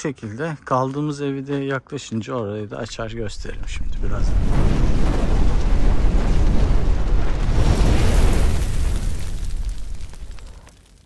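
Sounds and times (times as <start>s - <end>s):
fire and explosion sound effect: 2.9s - 11.0s.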